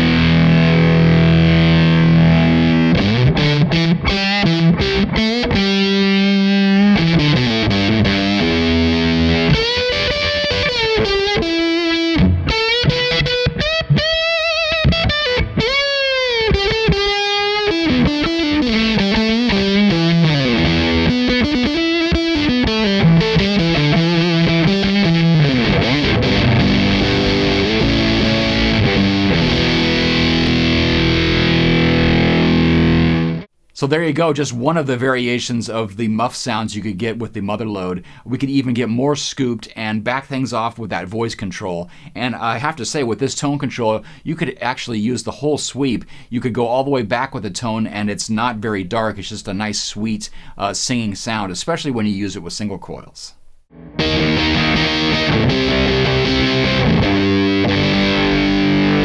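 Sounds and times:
fuzz electric guitar: 0:00.0 - 0:33.5, 0:53.7 - 0:59.0.

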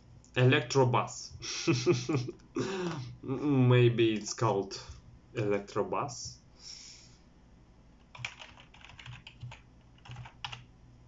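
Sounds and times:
computer keyboard typing: 0:08.0 - 0:10.7.

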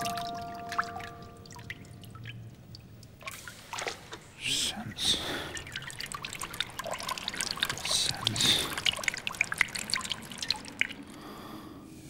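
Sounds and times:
water dripping and trickling: 0:00.0 - 0:11.8.

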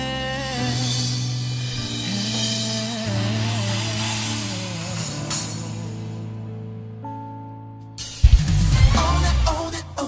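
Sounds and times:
acoustic drum kit playing: 0:00.0 - 0:06.2, 0:08.0 - 0:10.0
backing track with bass and melody: 0:00.0 - 0:10.0.

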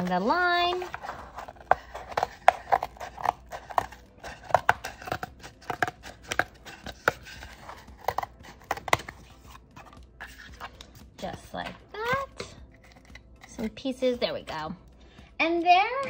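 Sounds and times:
scissors cutting cardboard: 0:00.0 - 0:13.7.

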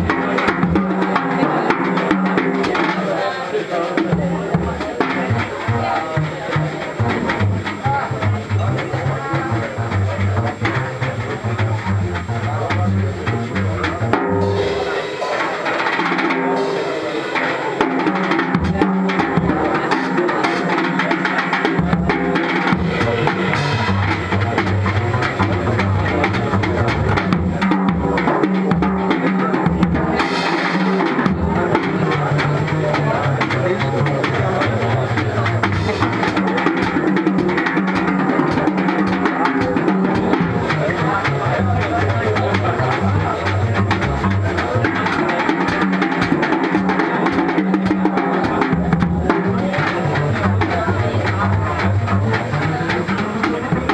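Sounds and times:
jazz drum kit: 0:00.0 - 0:53.9
walking double bass: 0:00.0 - 0:53.9.

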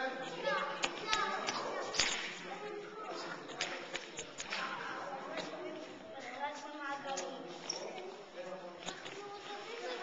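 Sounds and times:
faint children's voices: 0:00.0 - 0:10.0.

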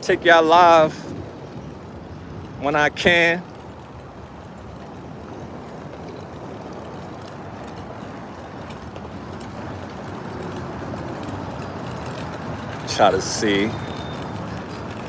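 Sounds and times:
wagon wheels rolling on asphalt: 0:00.0 - 0:15.0.

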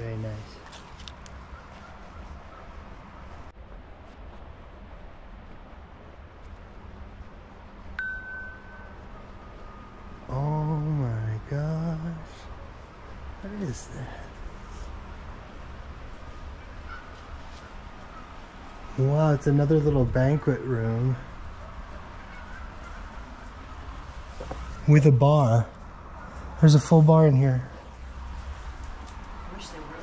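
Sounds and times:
high clear chime: 0:08.0 - 0:09.1
faint lower tone: 0:08.0 - 0:10.8
man's voice: 0:10.3 - 0:12.5, 0:13.4 - 0:14.4, 0:19.0 - 0:21.2, 0:26.6 - 0:27.8.

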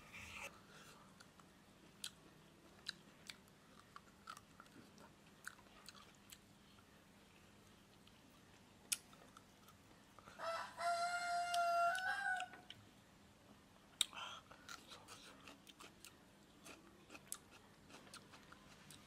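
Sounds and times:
rooster crowing: 0:10.4 - 0:12.7
chewing crunches: 0:14.0 - 0:19.0.

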